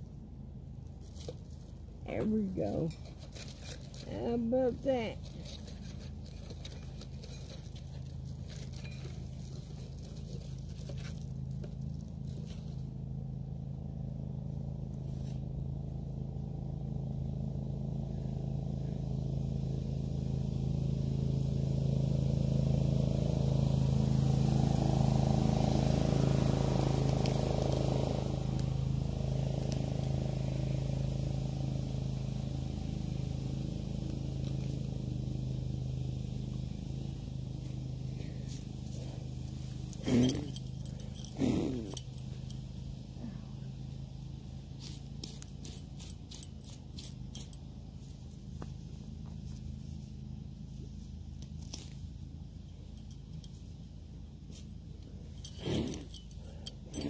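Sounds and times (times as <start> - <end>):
engine running: 0.0 - 57.0.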